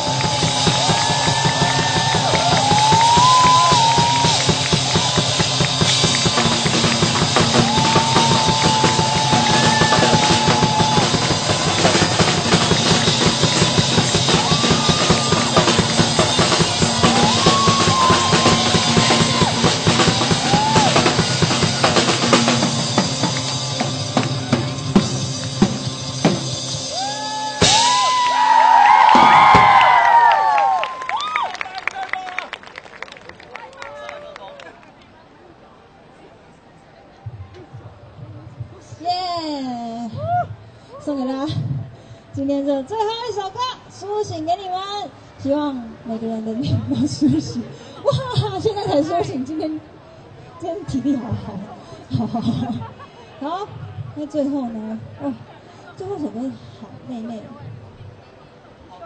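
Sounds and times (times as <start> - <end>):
children cheering and whooping: 0.0 - 12.2, 13.4 - 22.0, 26.9 - 32.4
drum kit fast groove: 0.0 - 28.2.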